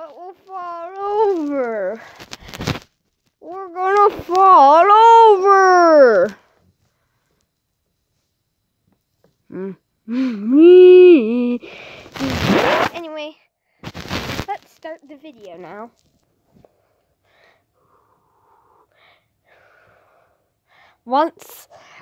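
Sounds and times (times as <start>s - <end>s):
child crying out wordlessly: 3.5s - 6.4s
loud noisy bursts: 12.0s - 13.0s, 13.8s - 14.5s.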